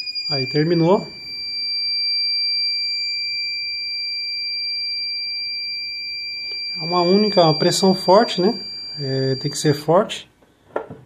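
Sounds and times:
timer buzzer high-pitched tone: 0:00.0 - 0:09.9.

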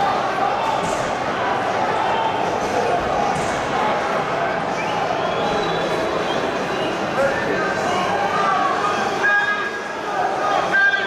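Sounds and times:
crowd voices din: 0:00.0 - 0:11.0.

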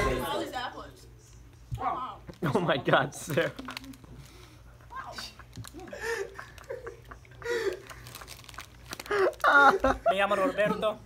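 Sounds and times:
plastic wrapper crinkling: 0:02.2 - 0:06.8, 0:07.6 - 0:10.0.

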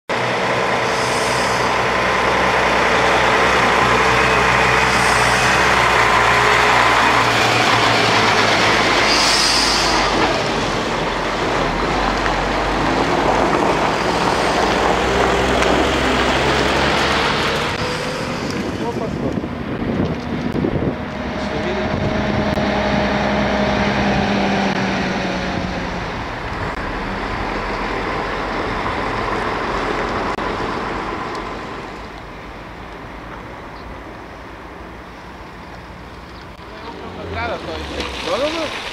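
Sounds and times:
diesel truck engine driving past: 0:00.1 - 0:34.9
machinery engine noise: 0:00.1 - 0:38.9.

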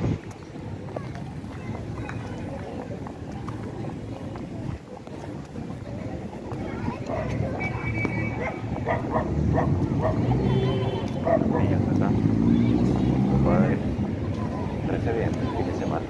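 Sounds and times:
people's voices: 0:00.0 - 0:16.0
traffic rumble: 0:00.0 - 0:16.0.

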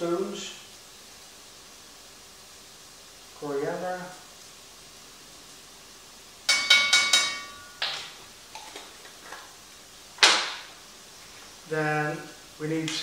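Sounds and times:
spoon tapping pot rim: 0:06.5 - 0:08.0
kitchen knocks: 0:06.5 - 0:08.7.

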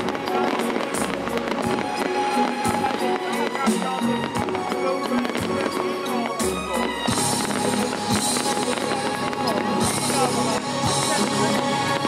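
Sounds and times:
fireworks bangs: 0:00.0 - 0:12.0
music: 0:00.0 - 0:12.0.

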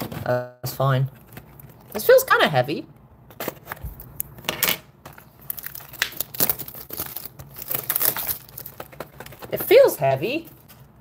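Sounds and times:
cardboard rustling and scraping: 0:03.4 - 0:11.0.

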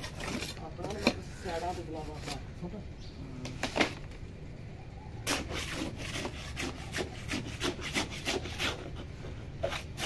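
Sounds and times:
trowel scraping wet mortar: 0:00.0 - 0:02.4, 0:05.3 - 0:10.0.

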